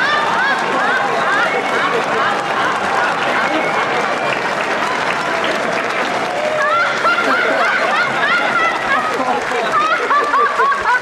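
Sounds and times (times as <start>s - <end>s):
audience applauding: 0.0s - 11.0s
audience laughing: 0.0s - 11.0s.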